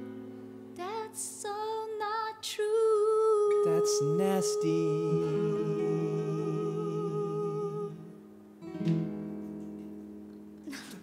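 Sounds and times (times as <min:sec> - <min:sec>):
person humming with vibrato: 0:03.4 - 0:08.1.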